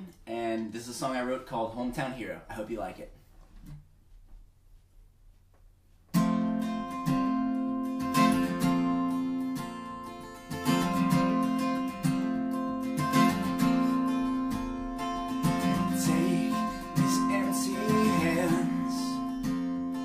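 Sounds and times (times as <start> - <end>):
acoustic guitar strumming: 6.1 - 20.0.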